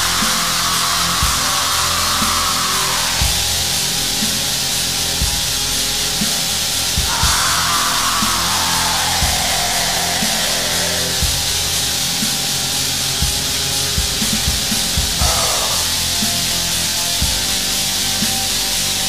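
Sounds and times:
distorted black metal music: 0.0s - 19.0s.

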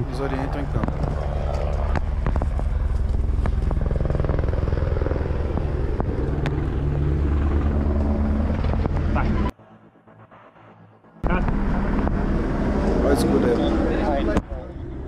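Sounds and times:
helicopter rotor throbbing: 0.0s - 15.0s.

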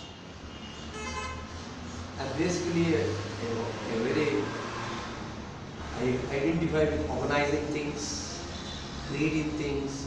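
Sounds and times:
vehicle horn honk: 0.0s - 1.5s.

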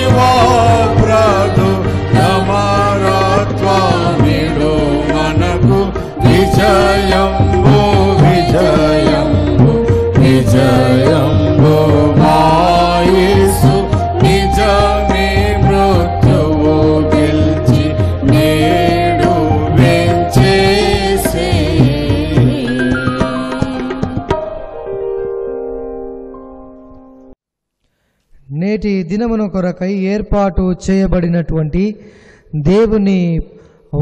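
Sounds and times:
person singing devotional song: 0.0s - 24.3s
instrumental accompaniment: 0.0s - 27.4s.

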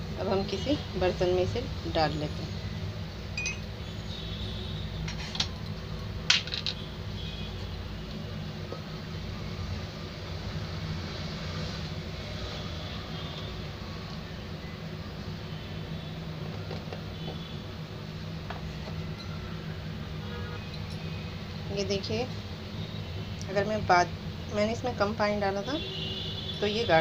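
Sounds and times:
metal jar clinking: 3.4s - 3.7s.

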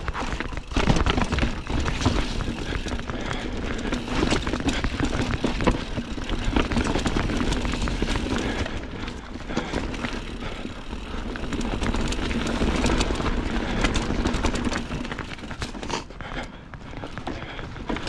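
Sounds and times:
bike knocking and rattling: 0.0s - 18.0s
bike tyres rumbling over rock: 0.0s - 18.0s.

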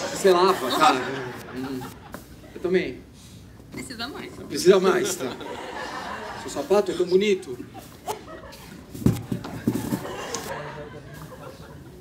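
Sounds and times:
footsteps on wooden stage floor: 8.9s - 10.3s.

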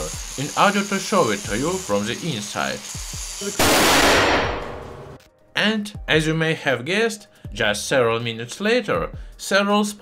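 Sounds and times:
angle grinder cutting steel: 0.0s - 3.6s
loud airbag blast: 3.6s - 5.2s.

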